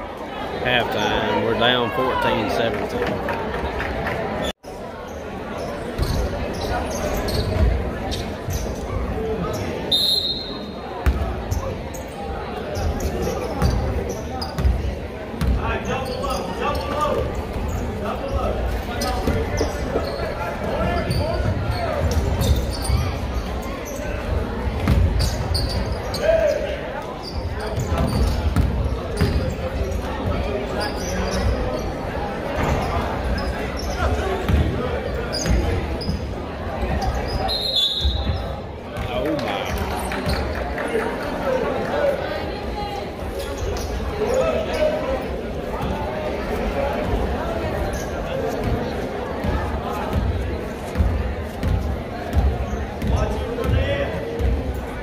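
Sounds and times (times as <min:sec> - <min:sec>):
crowd chatter and shouts: 0:00.0 - 0:55.0
referee's whistle: 0:09.9 - 0:10.7, 0:37.5 - 0:38.5.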